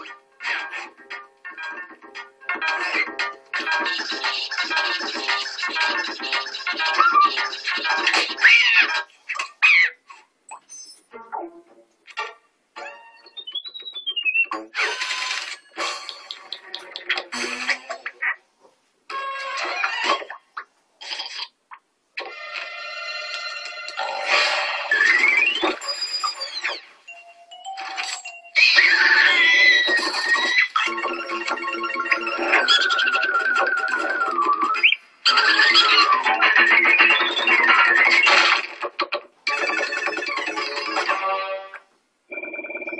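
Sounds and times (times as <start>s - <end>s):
cartoon music: 12.8s - 14.8s, 28.6s - 38.3s
ringing bell-like tones: 27.1s - 28.6s.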